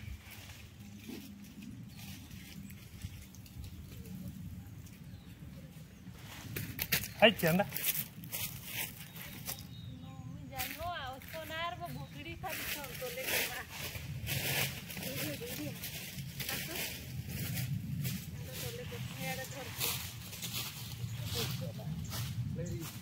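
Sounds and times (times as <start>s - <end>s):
branches and dry leaves rustling: 0.0s - 23.0s.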